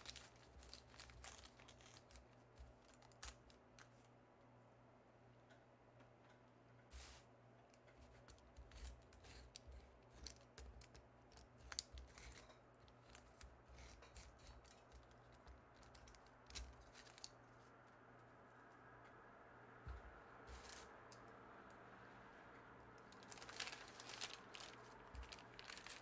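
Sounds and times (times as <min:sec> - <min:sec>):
paper rustling: 0:00.0 - 0:04.1, 0:08.0 - 0:18.4, 0:23.0 - 0:26.0
scissors cutting paper: 0:08.0 - 0:17.4.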